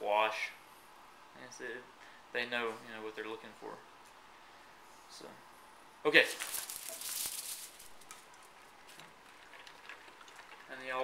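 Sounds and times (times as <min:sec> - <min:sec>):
dogs scrabbling on tile floor: 0:06.3 - 0:10.6.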